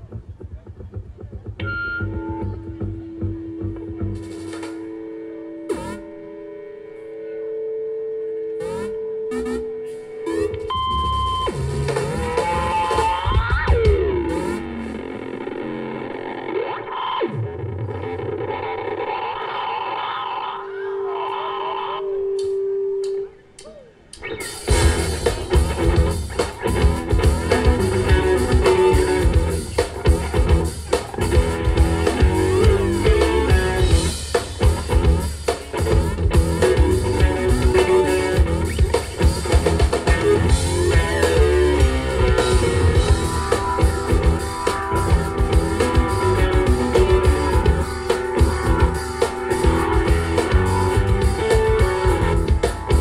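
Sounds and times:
rock band with drums: 0.0s - 6.2s, 8.5s - 21.3s, 22.3s - 53.0s
electric guitar tones: 0.0s - 53.0s
keyboard tones: 0.2s - 53.0s.

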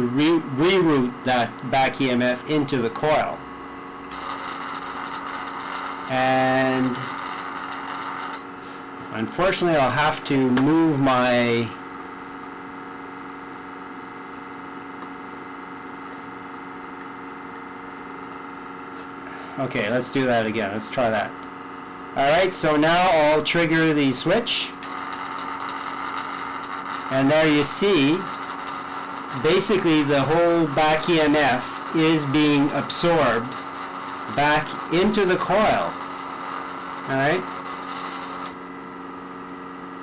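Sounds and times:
electrical hum: 0.0s - 40.0s
faint high whine: 0.0s - 40.0s.

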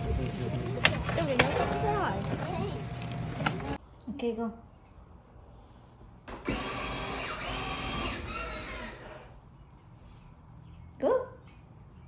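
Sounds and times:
toy electric motor whirring: 6.4s - 9.4s.

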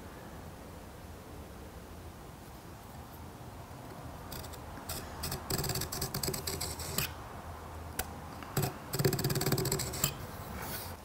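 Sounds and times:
knife scribing wood: 4.3s - 7.2s, 8.6s - 11.0s.

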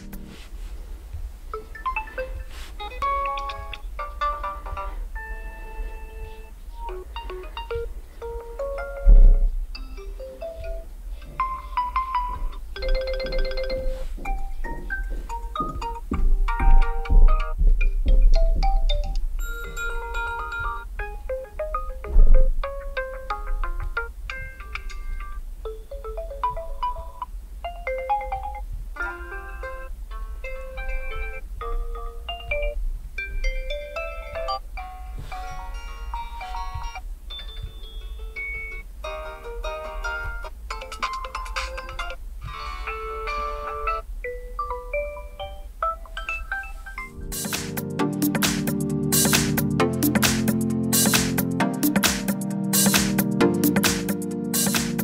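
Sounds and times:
phone ringtone melodies: 1.6s - 55.0s.

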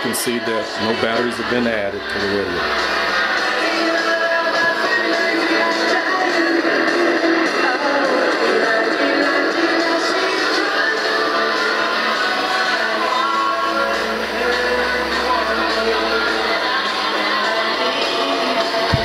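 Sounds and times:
music from radio loudspeaker: 0.0s - 19.0s.

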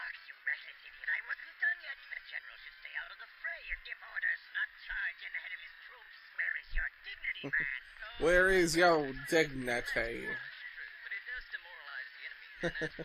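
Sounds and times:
tinny cartoon dialogue: 7.4s - 10.3s.

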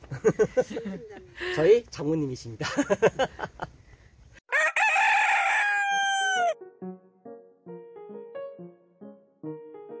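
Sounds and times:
rooster crowing: 4.5s - 6.6s
piano notes: 6.6s - 10.0s.

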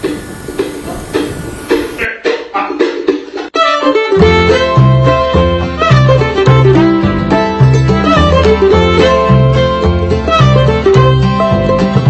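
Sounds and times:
snowmaking cannon hissing: 0.0s - 2.0s
music with repeating notes: 2.0s - 12.0s.

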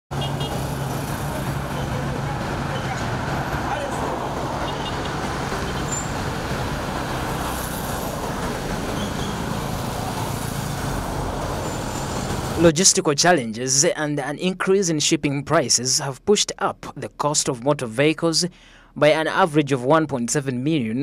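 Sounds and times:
cars and motorcycles passing: 0.1s - 12.7s.

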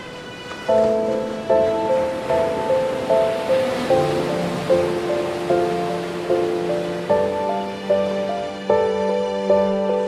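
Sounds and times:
ocean surf: 0.0s - 10.0s.

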